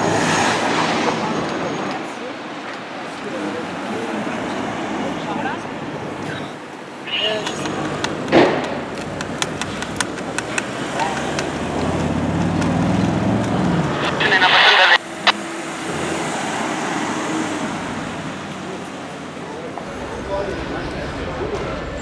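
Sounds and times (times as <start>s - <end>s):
traffic noise: 0.0s - 22.0s.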